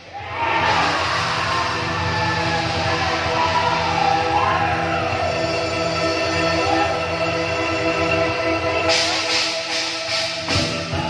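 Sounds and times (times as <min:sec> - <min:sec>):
bamboo percussion ensemble music: 0:08.8 - 0:11.0.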